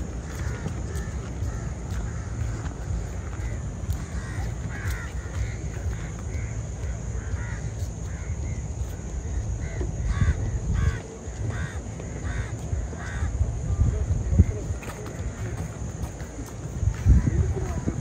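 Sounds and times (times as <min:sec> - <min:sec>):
birds calling: 0:00.0 - 0:18.0
steady low rumble: 0:00.0 - 0:18.0.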